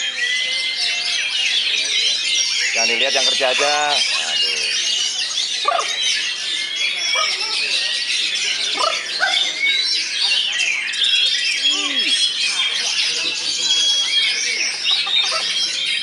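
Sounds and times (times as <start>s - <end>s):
birds singing whistles and trills: 0.0s - 16.0s.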